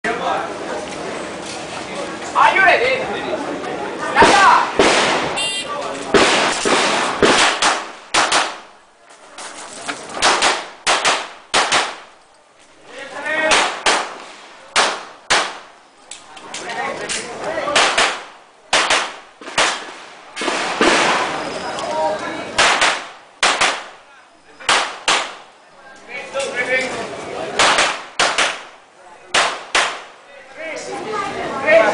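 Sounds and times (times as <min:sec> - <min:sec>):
pistol shots: 0:04.2 - 0:05.4, 0:06.1 - 0:08.7, 0:10.2 - 0:12.1, 0:13.5 - 0:15.7, 0:17.7 - 0:21.3, 0:22.6 - 0:24.0, 0:24.6 - 0:25.4, 0:27.6 - 0:28.7, 0:29.3 - 0:30.1.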